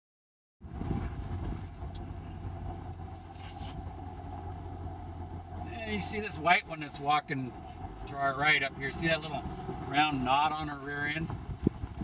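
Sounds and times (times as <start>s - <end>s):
vehicle engine running: 0.6s - 12.0s.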